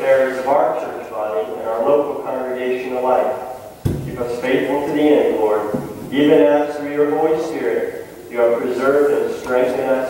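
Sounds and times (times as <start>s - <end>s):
sharp thump: 3.8s - 4.2s.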